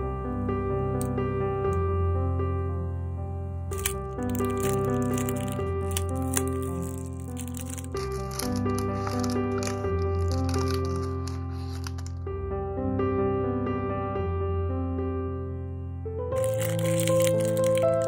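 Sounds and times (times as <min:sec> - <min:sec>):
soft piano music: 0:00.0 - 0:18.0
plastic wrapper crinkling: 0:03.7 - 0:12.2, 0:16.4 - 0:18.0.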